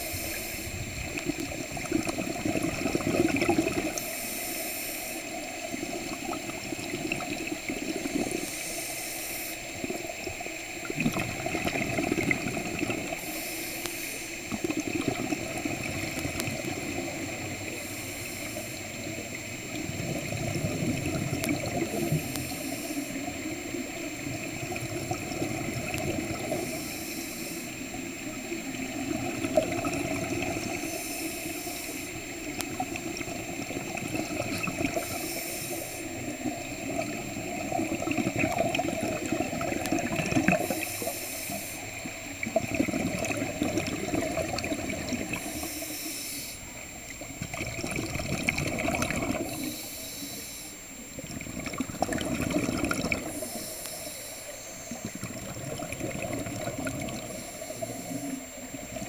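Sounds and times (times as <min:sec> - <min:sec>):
diver exhaling bubbles: 0:00.0 - 0:04.2, 0:09.8 - 0:13.4, 0:14.5 - 0:41.8, 0:42.4 - 0:46.1, 0:47.1 - 0:50.4, 0:51.2 - 0:54.0, 0:54.8 - 0:59.0
underwater hiss and wash: 0:00.0 - 0:59.0.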